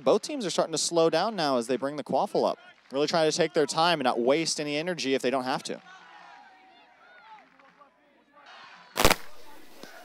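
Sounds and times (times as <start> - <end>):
faint crowd voices: 5.3 - 10.0.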